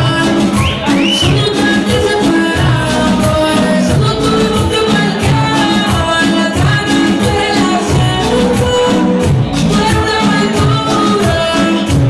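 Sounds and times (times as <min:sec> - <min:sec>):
upbeat latin music: 0:00.0 - 0:12.0.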